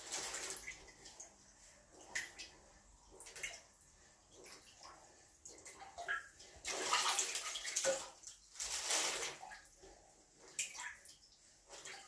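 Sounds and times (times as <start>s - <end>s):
water sloshing in toilet bowl: 0.0s - 12.0s.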